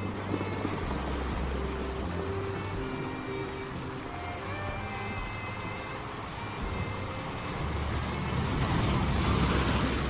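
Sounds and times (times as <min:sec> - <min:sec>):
ocean surf breaking on rocks: 0:00.0 - 0:10.0.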